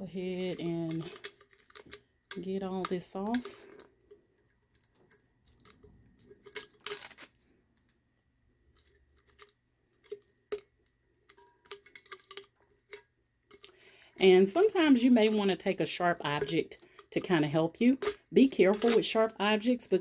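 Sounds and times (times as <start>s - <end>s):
paper and tape peeling crackles: 5.4s - 7.9s, 18.7s - 19.3s.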